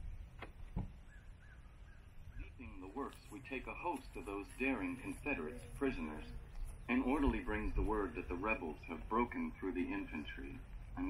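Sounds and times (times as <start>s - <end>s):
man's voice: 2.4s - 11.0s.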